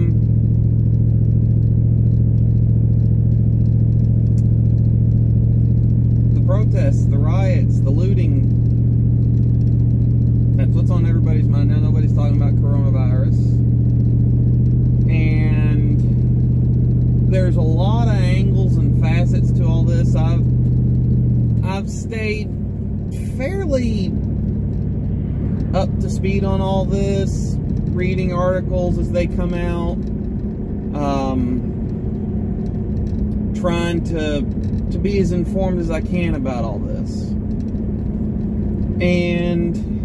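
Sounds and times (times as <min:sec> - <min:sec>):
car engine hum: 0:00.0 - 0:40.0
road noise: 0:00.0 - 0:40.0.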